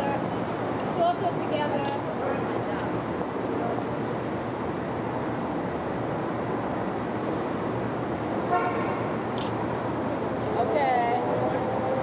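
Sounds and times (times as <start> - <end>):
city street traffic: 0.0 - 12.0
car horn toot: 8.5 - 8.9.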